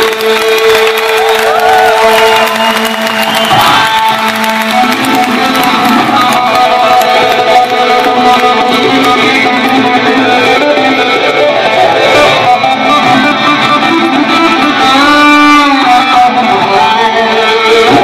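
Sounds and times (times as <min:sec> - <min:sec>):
electric guitar solo: 0:00.0 - 0:18.0.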